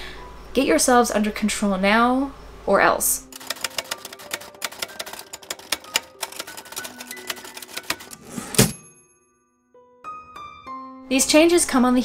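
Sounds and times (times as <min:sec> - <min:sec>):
typewriter carriage-return clatter: 0:03.3 - 0:08.8
typewriter key strikes: 0:03.3 - 0:08.9
typewriter bell ding: 0:03.4 - 0:09.4.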